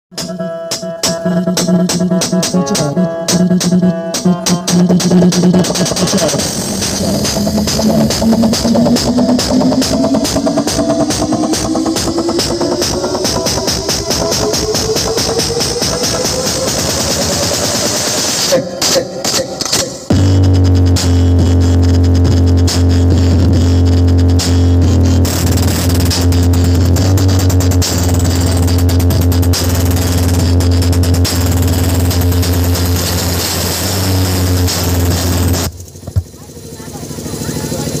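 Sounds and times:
electronic dance music: 0:00.0 - 0:38.0.

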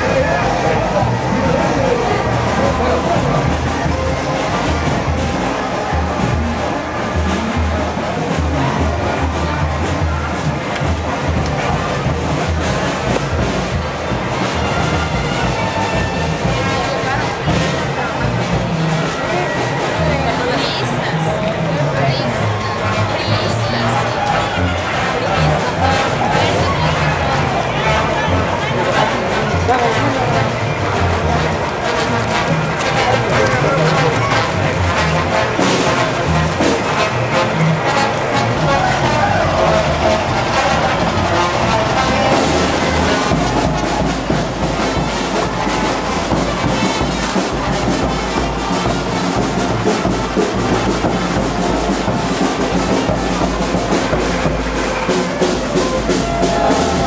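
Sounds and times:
brass band playing: 0:00.0 - 0:57.0
voices: 0:00.0 - 0:57.0.

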